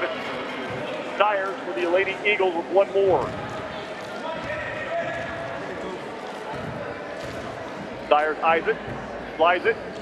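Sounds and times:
murmur of crowd voices: 0:00.0 - 0:10.0
basketball bouncing on wooden floor: 0:03.0 - 0:03.8, 0:06.5 - 0:07.9.

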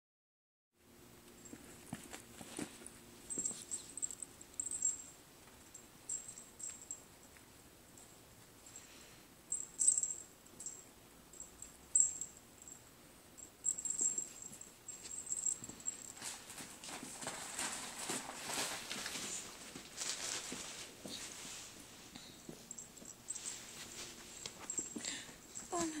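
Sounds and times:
animals scuffling on carpet: 0:01.4 - 0:05.6, 0:14.0 - 0:26.0.

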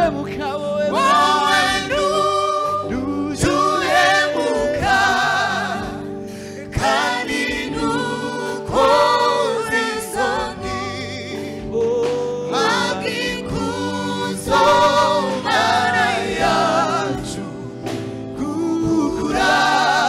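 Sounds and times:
choir singing in harmony: 0:00.0 - 0:20.0
drums: 0:10.1 - 0:20.0.

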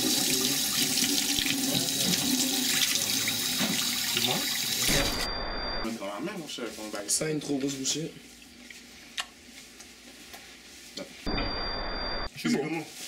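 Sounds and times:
low electronic buzz: 0:04.9 - 0:05.9, 0:11.3 - 0:12.3.

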